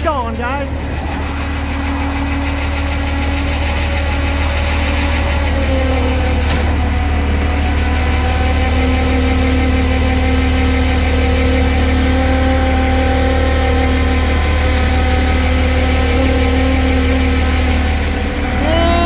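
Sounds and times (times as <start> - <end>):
hydraulic winch whine: 0.0 - 19.0
truck engine low hum: 0.0 - 19.0.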